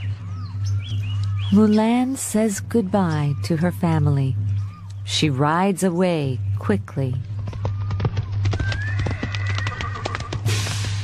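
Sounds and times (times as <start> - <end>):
low steady hum: 0.0 - 8.8
hooves galloping: 7.0 - 11.0
horse whinnying: 7.6 - 10.5.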